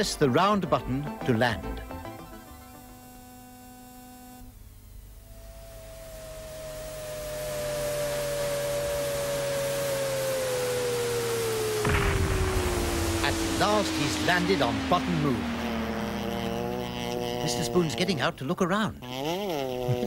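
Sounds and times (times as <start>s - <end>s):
electronic hiss: 0.0s - 20.0s
falling electronic whistle: 5.2s - 17.7s.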